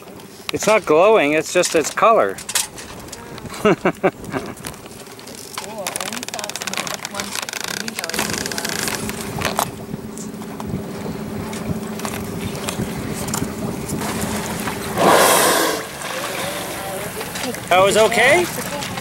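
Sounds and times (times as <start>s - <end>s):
boat motor humming: 0.0s - 19.0s
whale blowing: 10.7s - 17.2s.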